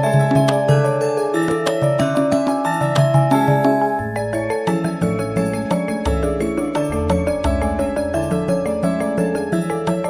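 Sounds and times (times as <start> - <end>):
instrumental tune over bass line: 0.0 - 10.0.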